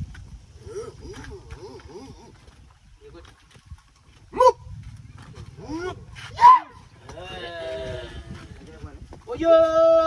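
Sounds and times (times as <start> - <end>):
man shouting: 9.3 - 10.0.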